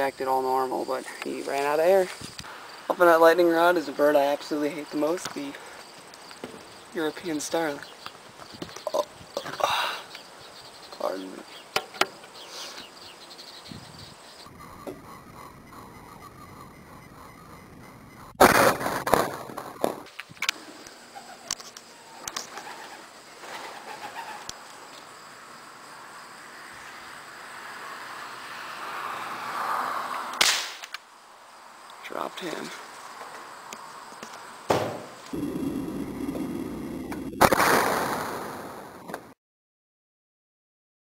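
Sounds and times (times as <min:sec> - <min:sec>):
loud noise: 0:14.5 - 0:20.1, 0:34.8 - 0:39.1
air rifle shot crack: 0:30.4 - 0:31.0, 0:34.7 - 0:35.2, 0:37.4 - 0:38.9.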